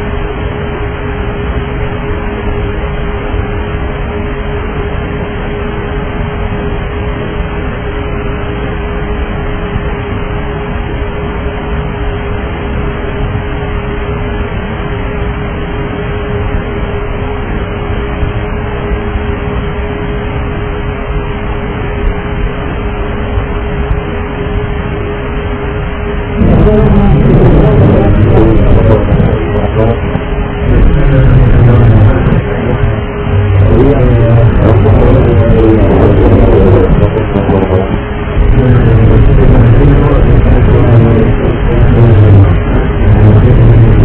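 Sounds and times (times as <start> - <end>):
constant electrical hum: 0.0 - 44.0.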